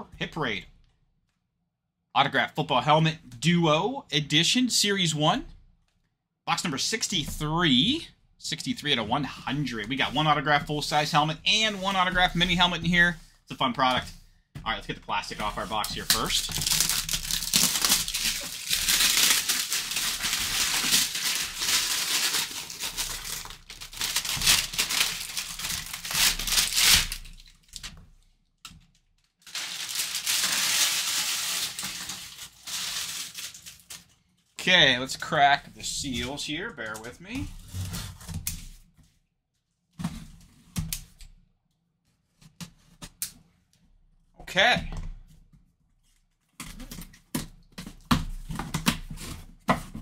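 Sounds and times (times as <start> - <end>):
plastic shrink wrap crinkling and tearing: 15.5 - 27.9, 29.2 - 34.6.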